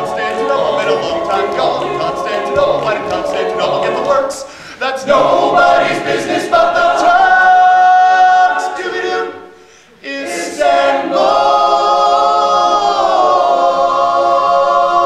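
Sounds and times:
male a cappella group singing: 0.0 - 15.0.

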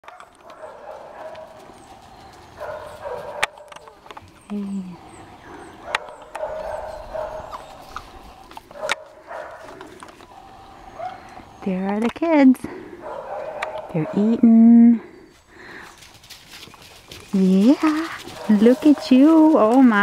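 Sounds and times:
dogs whining and yapping: 0.0 - 11.9.

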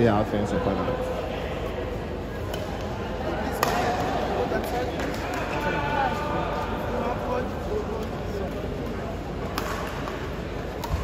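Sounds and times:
spectators chattering: 0.0 - 11.0
rackets striking shuttlecock: 2.4 - 4.3, 9.4 - 11.0.

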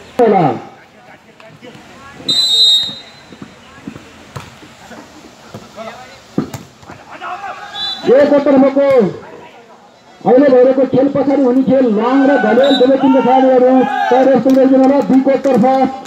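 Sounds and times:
referee's whistle blast: 2.3 - 3.3, 7.8 - 8.2, 12.5 - 13.1
loud long shout: 7.1 - 8.3, 12.0 - 14.4.

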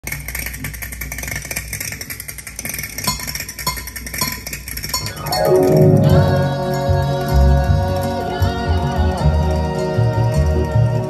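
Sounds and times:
percussion strokes: 3.0 - 11.0
low hum: 4.9 - 10.3.

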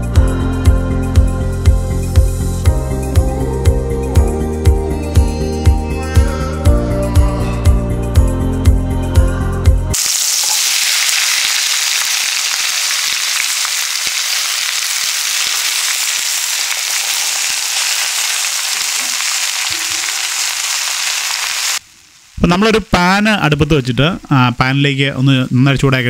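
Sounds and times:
vegetables sizzling in hot oil: 10.0 - 23.6.

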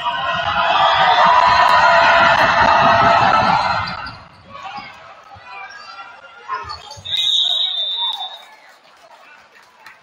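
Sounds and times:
crowd yelling: 0.0 - 8.7.

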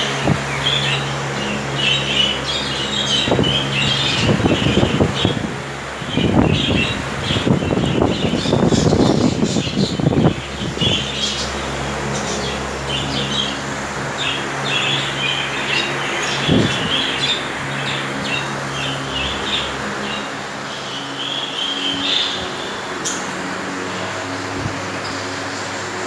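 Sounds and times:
budgerigars chirping and chattering: 0.0 - 24.4
steady low hum: 0.0 - 26.0.

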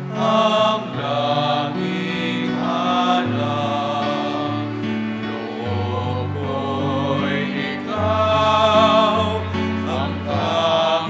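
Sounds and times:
voices singing a hymn: 0.0 - 11.0.

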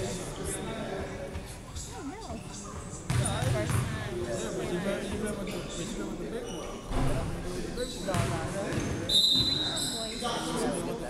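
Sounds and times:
voices calling out in gym: 0.0 - 11.0.

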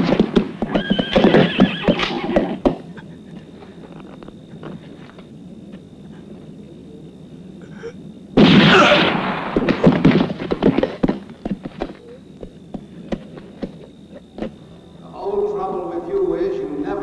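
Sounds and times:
hooves clattering: 0.0 - 6.5, 9.5 - 14.6
horse whinnying: 0.6 - 2.7.

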